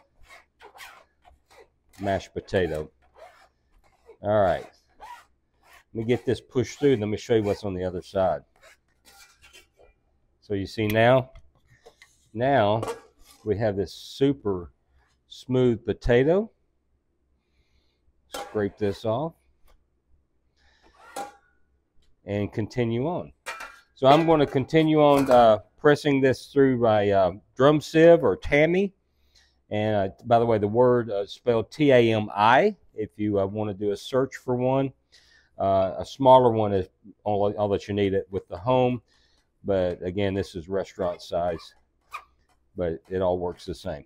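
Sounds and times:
scraper scraping a steel bowl: 0.0 - 7.7, 8.5 - 9.8.

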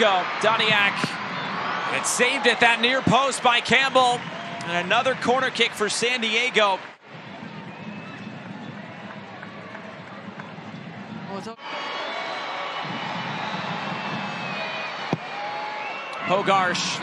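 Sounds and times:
crowd shouts: 0.0 - 10.5, 11.6 - 17.0
stadium crowd din: 0.0 - 17.0.

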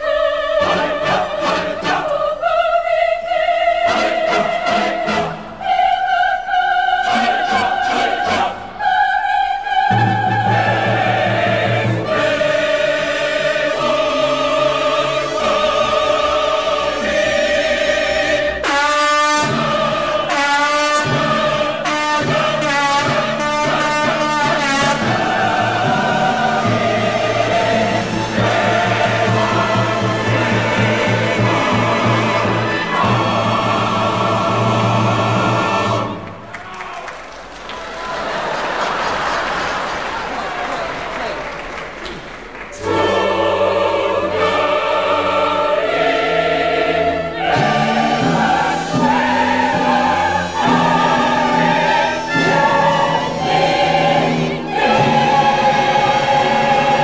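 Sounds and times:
chorus singing long chords: 0.0 - 36.5, 42.7 - 57.0
orchestra playing: 3.8 - 6.2, 6.9 - 36.5, 42.8 - 57.0.

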